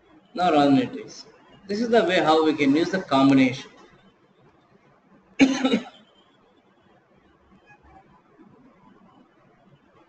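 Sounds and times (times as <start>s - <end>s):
man coughing: 5.4s - 6.0s.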